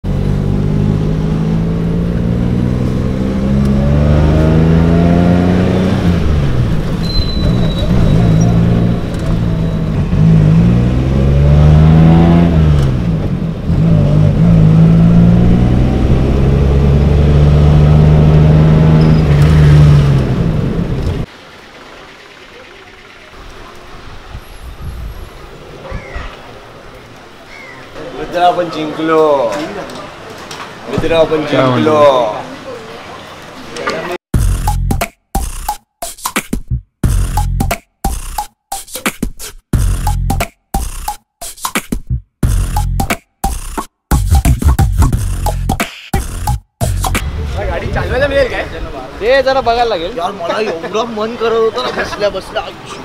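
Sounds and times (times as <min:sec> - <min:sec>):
car engine accelerating: 0:00.0 - 0:22.6.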